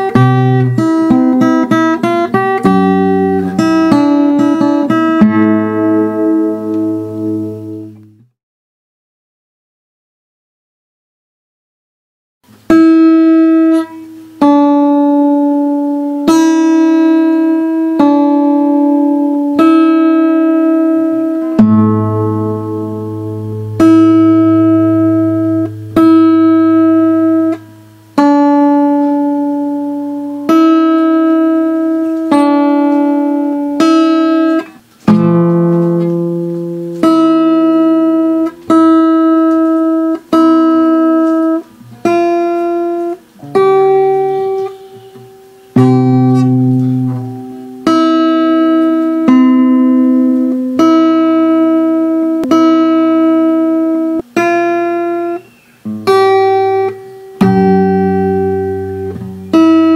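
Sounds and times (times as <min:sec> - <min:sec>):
fingerstyle acoustic guitar: 0:00.0 - 0:08.3, 0:12.5 - 0:59.9.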